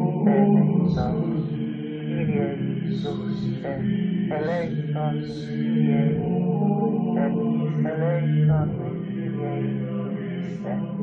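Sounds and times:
person chanting: 0:00.0 - 0:11.0
sustained drone: 0:00.0 - 0:11.0.

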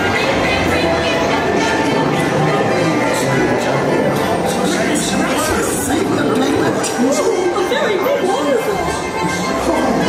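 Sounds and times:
ride music playing quietly: 0:00.0 - 0:10.0
voices talking: 0:00.0 - 0:10.0.

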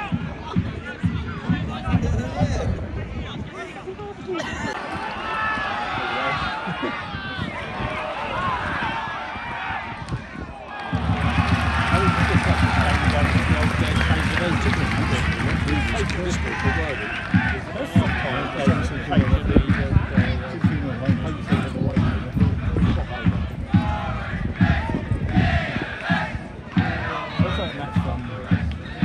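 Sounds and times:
crowd chatter and calling out: 0:00.0 - 0:29.0.

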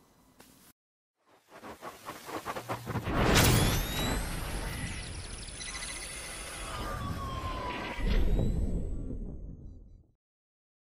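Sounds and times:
falling synth tone: 0:02.6 - 0:09.8.

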